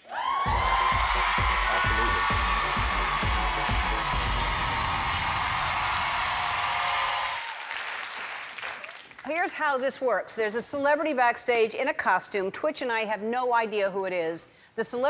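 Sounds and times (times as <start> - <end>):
deep bass beats: 0.4 - 6.1.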